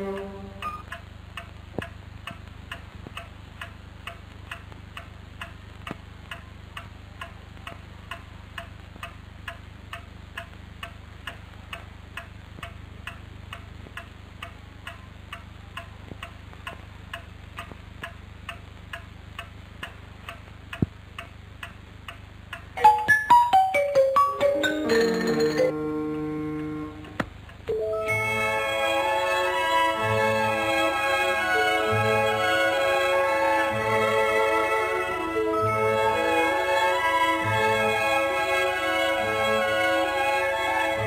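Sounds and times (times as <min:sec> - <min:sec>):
clock ticking: 0:00.0 - 0:27.8
low steady hum: 0:00.0 - 0:41.0.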